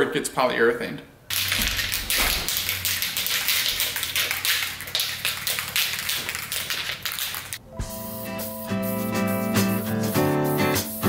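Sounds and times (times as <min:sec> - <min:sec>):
aerosol can spray bursts: 0:01.3 - 0:09.4, 0:10.0 - 0:11.0.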